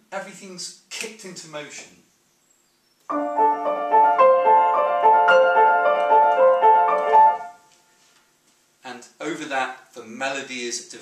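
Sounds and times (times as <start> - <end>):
upright piano repeated notes: 3.1 - 7.7.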